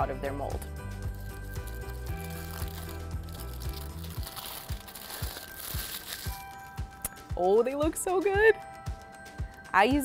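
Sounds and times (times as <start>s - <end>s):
background music with steady beat: 0.0s - 10.0s
tin foil crinkling: 1.0s - 6.8s.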